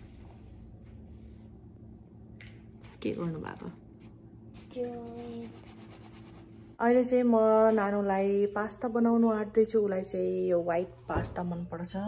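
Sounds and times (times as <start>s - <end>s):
crayon scribbling on paper: 4.6s - 6.5s.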